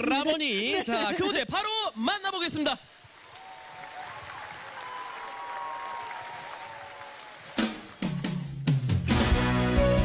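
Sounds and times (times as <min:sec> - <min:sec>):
audience applauding and cheering: 0:03.1 - 0:08.6.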